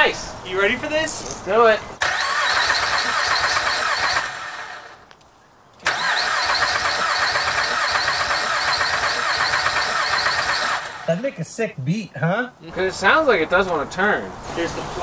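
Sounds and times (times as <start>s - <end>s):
car engine cranking: 2.0s - 5.0s, 5.8s - 11.1s.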